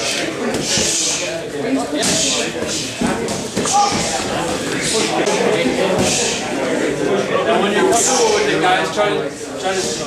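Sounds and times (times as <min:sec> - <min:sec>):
people talking in echoing hall: 0:00.0 - 0:10.0.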